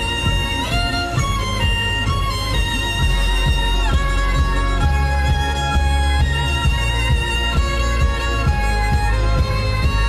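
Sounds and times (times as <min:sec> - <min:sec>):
backing track with beat: 0:00.0 - 0:10.0
violin playing held notes: 0:00.0 - 0:10.0.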